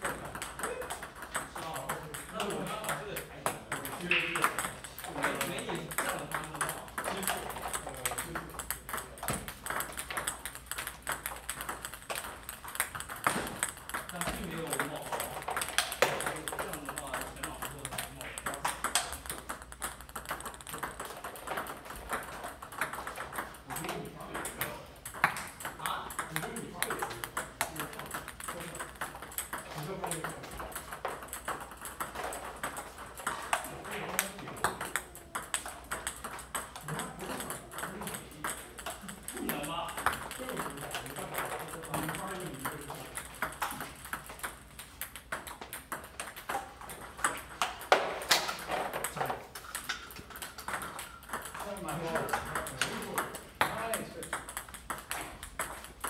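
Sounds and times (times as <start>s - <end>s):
table tennis balls clicking: 0.0s - 56.0s.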